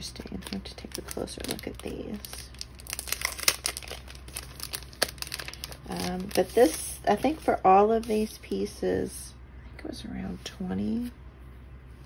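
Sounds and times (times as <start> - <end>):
plastic packet crinkling: 0.1 - 8.3.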